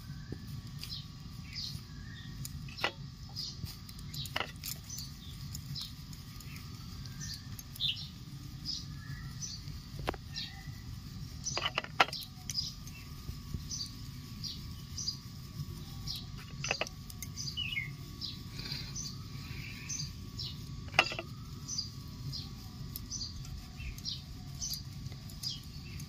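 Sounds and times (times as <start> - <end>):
steady low rumble: 0.0 - 26.0
bird chirping: 0.8 - 26.0.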